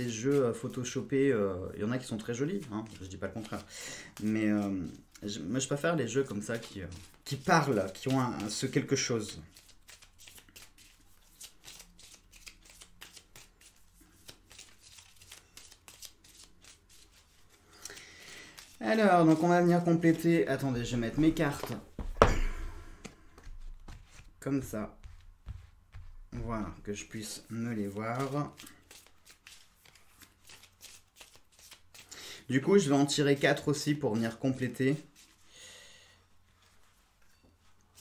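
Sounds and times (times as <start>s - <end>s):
cards being shuffled: 1.8s - 35.4s.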